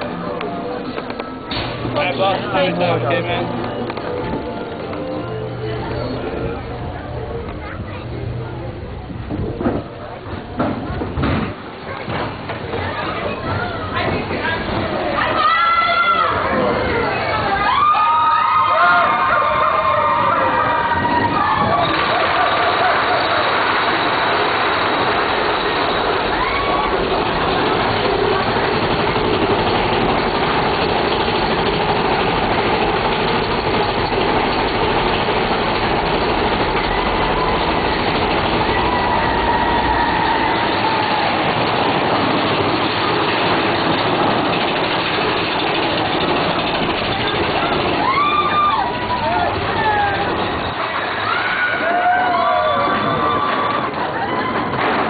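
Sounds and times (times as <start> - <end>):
roller coaster rushing on track: 0.0 - 55.0.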